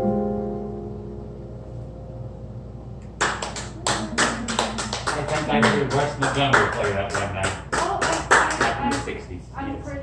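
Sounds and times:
small audience applauding: 0:03.1 - 0:09.3.

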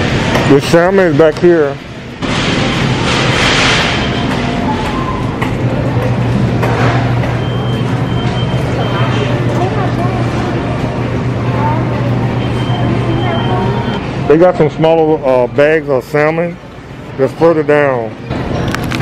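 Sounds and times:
refrigerator low hum: 0:00.0 - 0:19.0
shopping cart rolling: 0:02.2 - 0:11.0.

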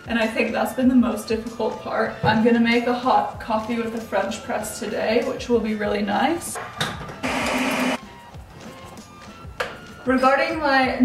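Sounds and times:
background music: 0:00.0 - 0:11.0
small electric motor whirring: 0:07.2 - 0:08.0.

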